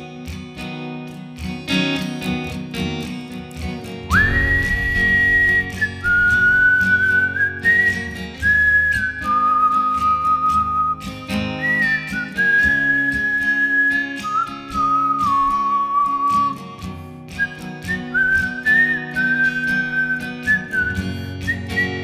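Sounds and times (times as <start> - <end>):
strummed acoustic guitar: 0.0 - 22.0
man whistling a slow melody: 4.1 - 22.0.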